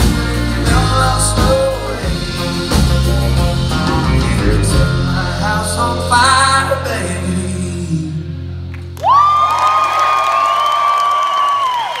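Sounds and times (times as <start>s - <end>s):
faint crowd cheering: 9.0s - 12.0s.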